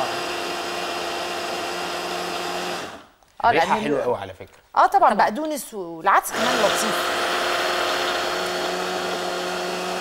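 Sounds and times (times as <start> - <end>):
electric blender running: 0.0 - 3.1, 6.3 - 10.0.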